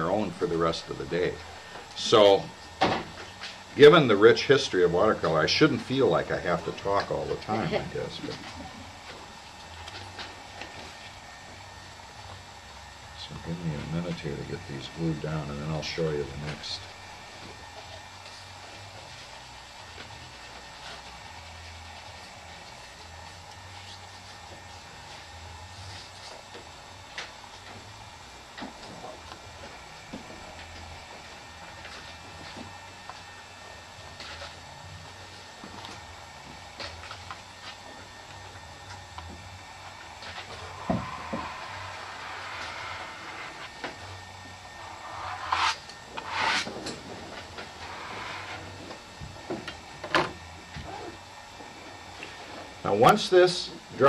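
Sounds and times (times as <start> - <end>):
low steady hum: 0.0 - 54.0
paper being smoothed and pressed: 44.8 - 46.9.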